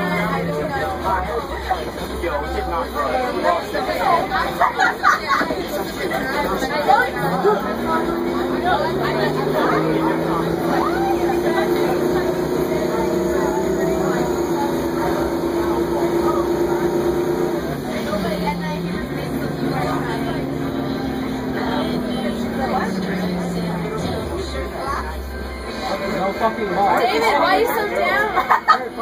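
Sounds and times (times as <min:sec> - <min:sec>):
bus engine droning: 0:00.0 - 0:29.0.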